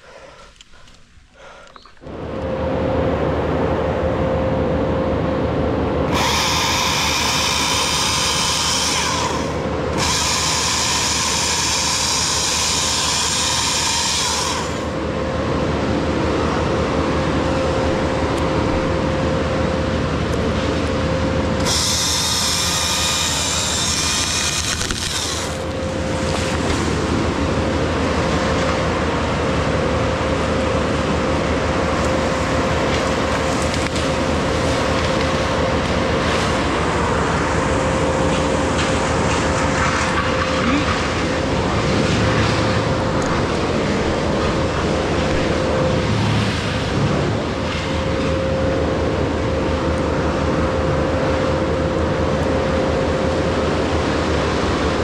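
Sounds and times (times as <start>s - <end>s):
chainsaw motor whine: 2.0s - 55.0s
chainsaw cutting wood screech: 6.1s - 15.0s, 21.6s - 26.8s, 39.4s - 41.4s.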